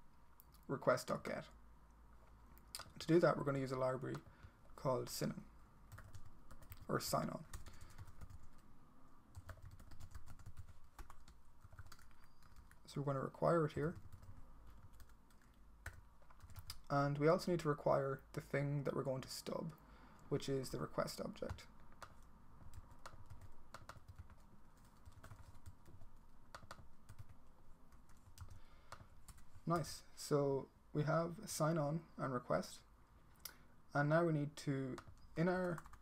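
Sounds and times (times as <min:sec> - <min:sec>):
computer keyboard typing: 0:05.9 - 0:08.6, 0:09.3 - 0:12.9, 0:13.8 - 0:16.9, 0:21.4 - 0:29.9, 0:34.9 - 0:36.0.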